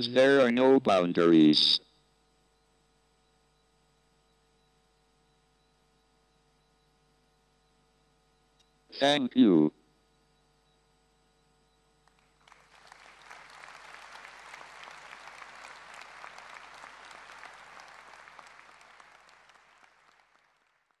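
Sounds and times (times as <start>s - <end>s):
audience applause: 12.2s - 21.0s.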